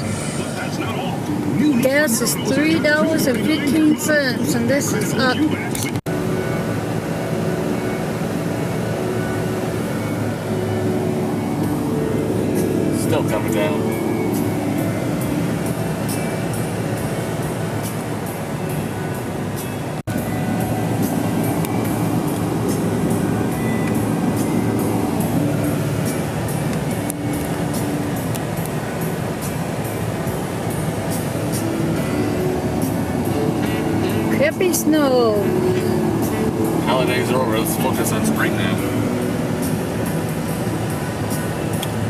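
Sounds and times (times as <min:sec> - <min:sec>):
music on car radio: 0:00.0 - 0:42.0
road and engine noise: 0:00.0 - 0:42.0.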